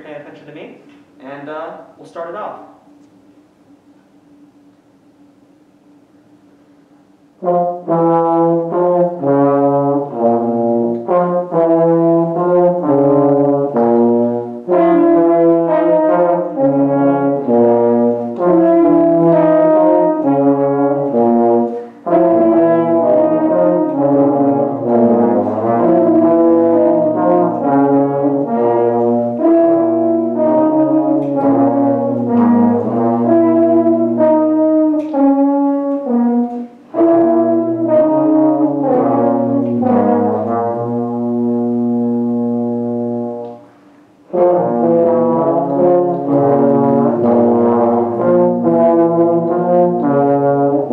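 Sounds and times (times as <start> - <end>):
brass ensemble playing blues: 7.3 - 43.6, 44.2 - 50.9.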